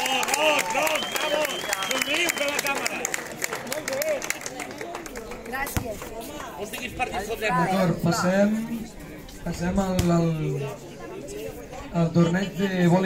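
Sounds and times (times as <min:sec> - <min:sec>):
audience clapping: 0:00.0 - 0:06.9
chatter of voices: 0:00.0 - 0:13.0.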